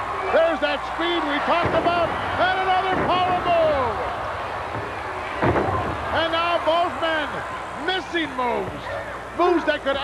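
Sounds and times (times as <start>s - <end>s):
arena crowd noise: 0.0s - 10.0s
man talking: 0.4s - 4.0s, 6.2s - 8.8s, 9.4s - 10.0s
thump: 1.6s - 2.1s, 4.7s - 6.0s.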